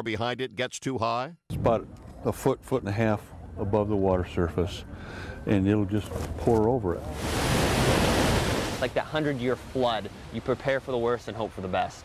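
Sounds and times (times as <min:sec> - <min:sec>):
water rushing: 0:07.0 - 0:12.0.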